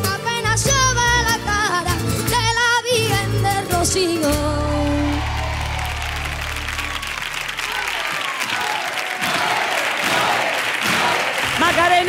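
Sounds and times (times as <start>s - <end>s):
audience applauding and cheering: 4.6s - 12.0s.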